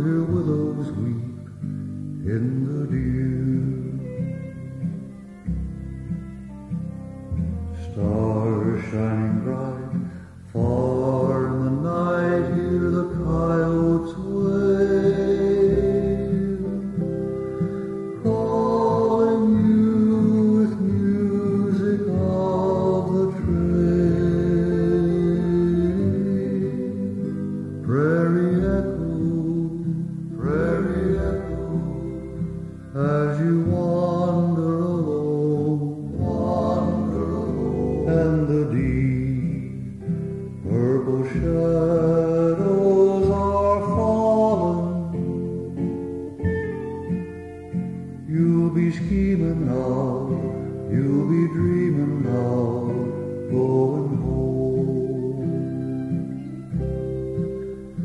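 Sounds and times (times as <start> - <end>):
acoustic guitar picking: 0.0 - 58.0
violin melody: 0.0 - 58.0
violin long held notes: 10.6 - 27.3, 28.5 - 39.8.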